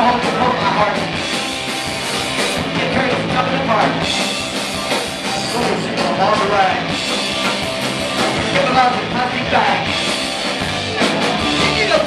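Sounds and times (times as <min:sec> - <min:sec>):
drums: 0:00.0 - 0:12.0
electric guitar: 0:00.0 - 0:12.0.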